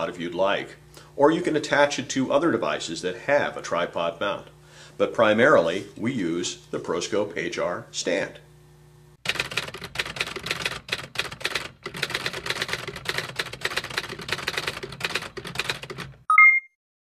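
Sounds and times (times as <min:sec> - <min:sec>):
typewriter keys clicking: 0:09.3 - 0:16.2
high bell ding: 0:16.3 - 0:16.7.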